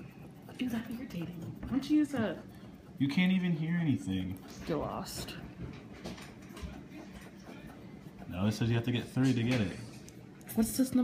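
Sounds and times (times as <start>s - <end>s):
fingernail scratching ticket: 0.0s - 9.9s.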